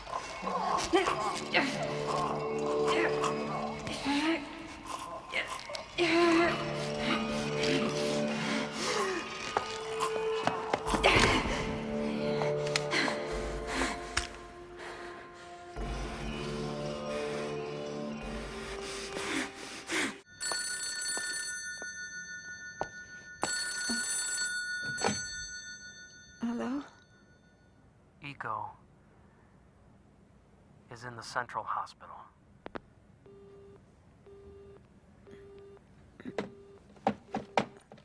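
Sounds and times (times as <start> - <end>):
telephone ringing: 20.3 - 26.4.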